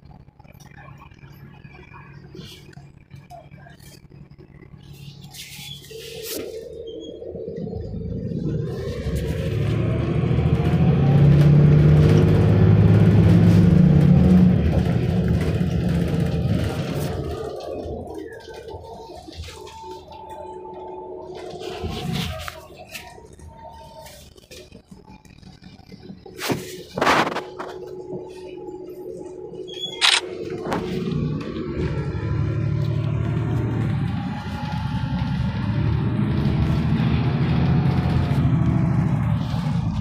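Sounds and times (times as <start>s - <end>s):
bus engine accelerating with whine: 0.0s - 40.0s.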